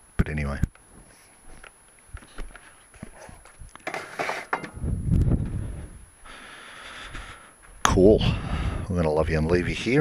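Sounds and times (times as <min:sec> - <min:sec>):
rubbing rumble on microphone: 0:02.2 - 0:06.1.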